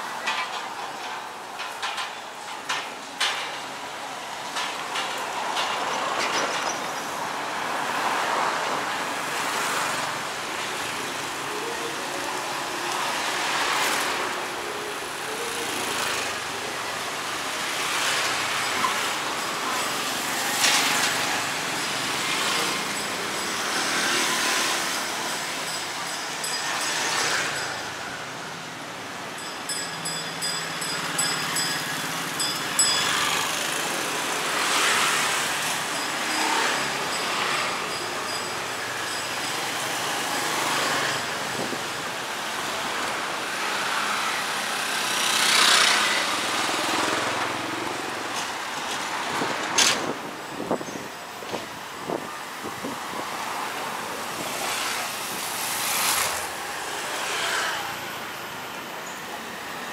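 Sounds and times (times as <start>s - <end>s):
scooters and cars passing: 0.0s - 59.9s
traffic hum: 0.0s - 59.9s.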